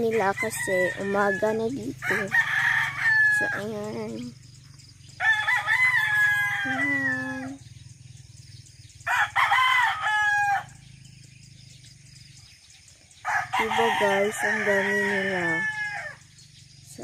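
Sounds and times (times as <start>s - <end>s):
roosters crowing: 0.0s - 3.9s, 5.1s - 7.7s, 8.9s - 11.1s, 13.1s - 16.7s.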